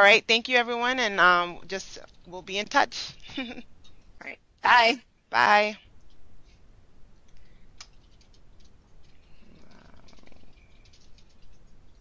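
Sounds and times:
computer keyboard and mouse clicks: 7.4 - 9.2, 10.0 - 12.0.

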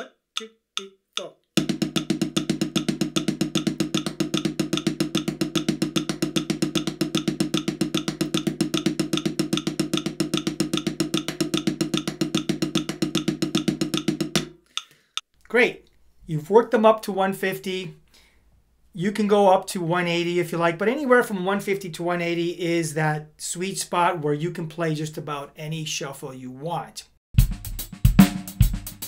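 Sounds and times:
drumsticks on practice pad: 0.0 - 15.3.

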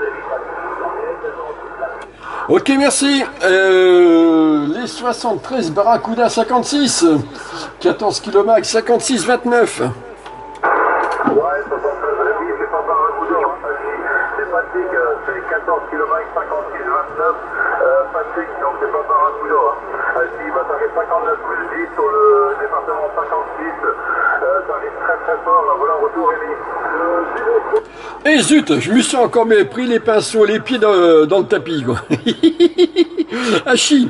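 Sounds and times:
voice over radio speaker: 0.0 - 10.0, 10.6 - 31.6
faint steady hum: 0.0 - 34.0.

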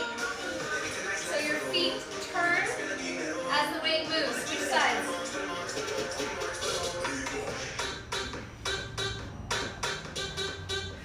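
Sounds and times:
background music with steady beat: 0.0 - 11.0.

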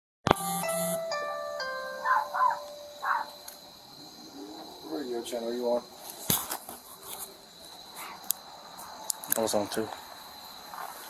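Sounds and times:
electronic doorbell chime tune: 0.4 - 3.4.

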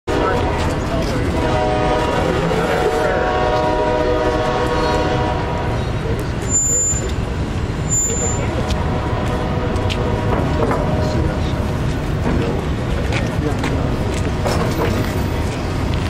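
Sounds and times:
machinery low rumble: 0.1 - 16.0
high beep: 6.4 - 7.2, 7.9 - 8.5.

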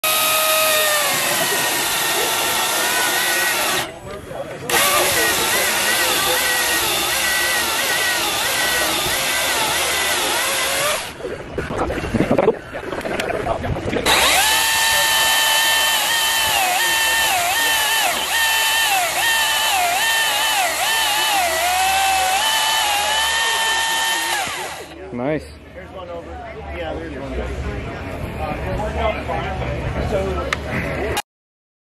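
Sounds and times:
electric chainsaw cutting logs: 0.0 - 4.0, 4.7 - 11.2, 14.0 - 25.0.

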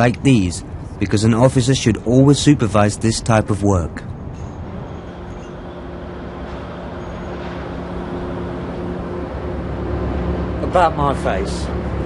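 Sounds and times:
low machinery drone: 0.0 - 12.0.

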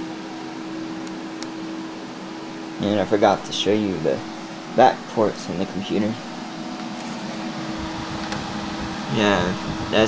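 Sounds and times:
computer fans rushing air: 0.0 - 10.0.

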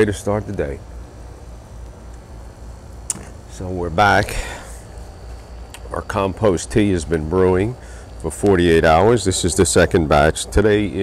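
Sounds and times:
faint hiss: 0.0 - 11.0
low background rumble: 0.0 - 11.0.

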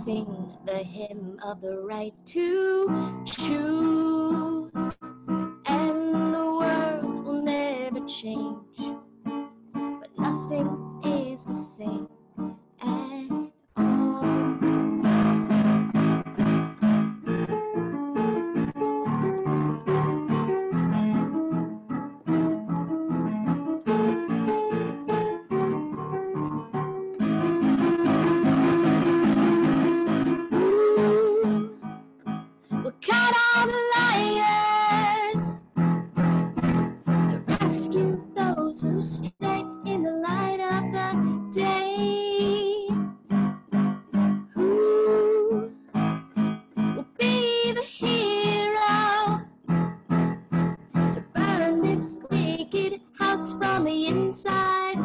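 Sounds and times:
woman singing slow song: 0.0 - 9.0, 10.0 - 12.1, 12.8 - 14.8, 30.5 - 31.8, 32.8 - 35.7, 37.1 - 43.0, 44.6 - 45.8, 47.0 - 49.5, 51.2 - 55.0
electronic keyboard piano chords: 0.0 - 55.0.

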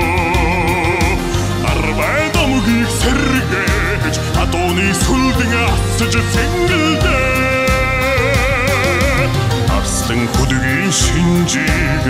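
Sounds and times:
band playing with steady drumbeat: 0.0 - 12.0
man singing long note with vibrato: 0.0 - 12.0.

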